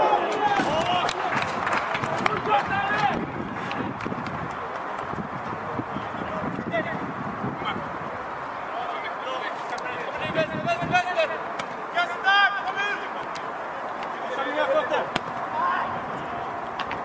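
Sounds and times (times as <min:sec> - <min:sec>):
voices shouting: 0:00.0 - 0:03.7, 0:08.6 - 0:16.7.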